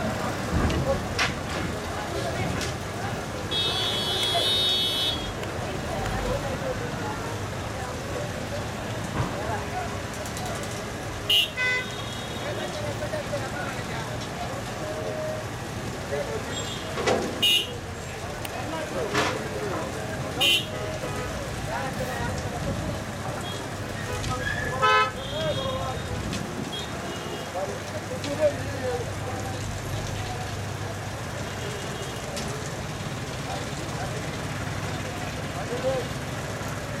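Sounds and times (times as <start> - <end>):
crowd chatter: 0.0 - 37.0
people talking: 0.0 - 37.0
vehicle engines running: 0.0 - 37.0.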